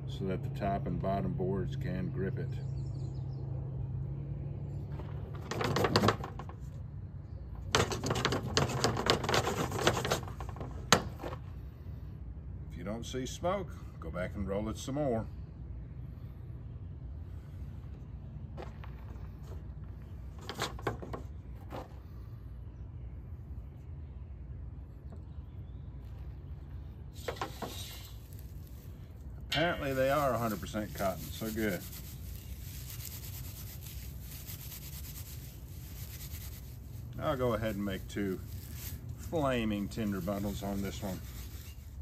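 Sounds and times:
low background rumble: 0.0 - 42.0
soft rustles of cotton: 25.9 - 42.0.

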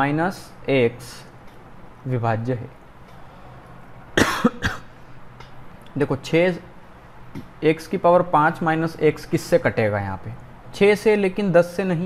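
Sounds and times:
man coughing: 4.2 - 4.9.

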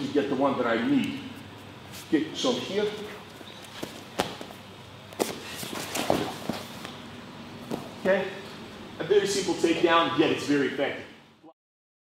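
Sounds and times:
bare feet shuffling on a mat: 2.8 - 7.0, 7.6 - 8.1
bodies thudding on a mat: 7.6 - 8.0.

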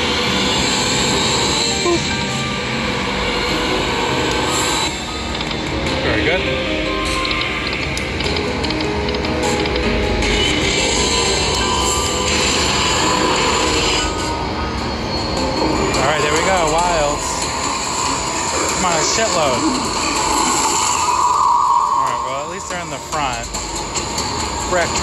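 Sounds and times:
slot machine game music: 0.0 - 25.0.

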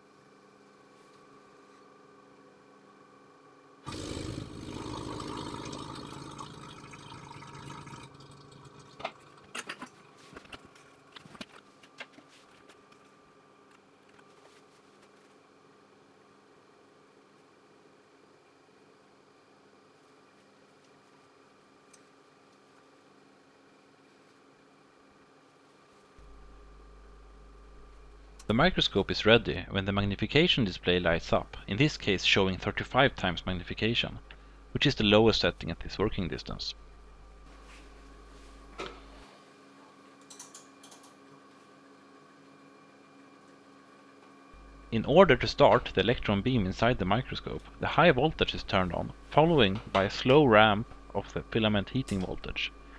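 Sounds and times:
faint vacuum pump hum: 0.0 - 52.9.

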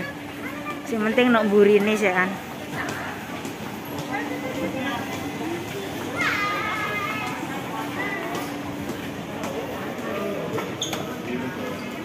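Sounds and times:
crowd chatter: 0.0 - 12.0.

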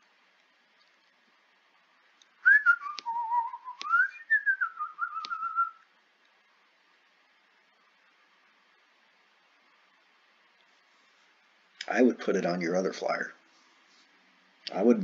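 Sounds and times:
sharp clicks: 2.2 - 3.2, 3.8 - 4.0, 5.2 - 5.4
person whistling a tune: 2.4 - 5.8.

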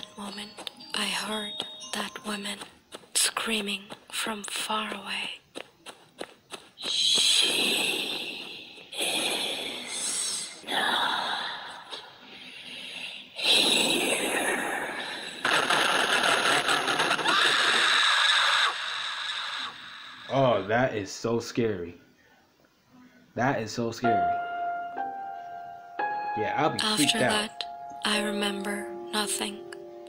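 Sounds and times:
woman screaming: 17.2 - 19.8.

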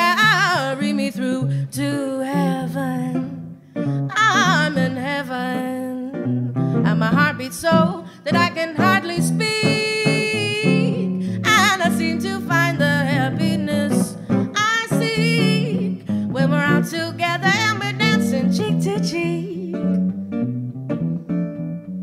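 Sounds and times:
woman singing with vibrato: 0.0 - 3.4, 4.0 - 6.2, 6.8 - 19.9
plucked guitar: 0.0 - 22.0.

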